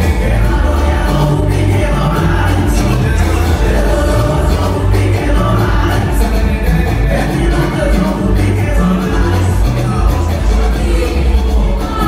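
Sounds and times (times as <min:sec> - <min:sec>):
heavy bass beat: 0:00.0 - 0:12.0
live concert music: 0:00.0 - 0:12.0
woman singing: 0:00.0 - 0:12.0.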